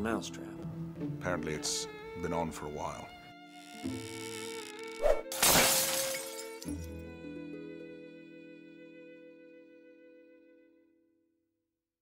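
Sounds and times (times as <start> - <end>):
soft string music: 0.0 - 11.1
glass shattering crash: 5.3 - 6.8.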